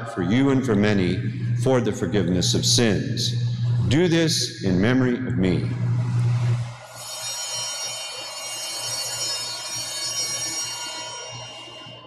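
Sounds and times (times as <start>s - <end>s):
altar bells ringing: 6.9s - 12.0s.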